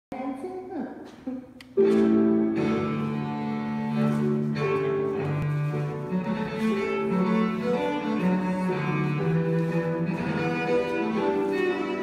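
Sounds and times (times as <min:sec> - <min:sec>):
woman speaking: 0:00.1 - 0:01.6.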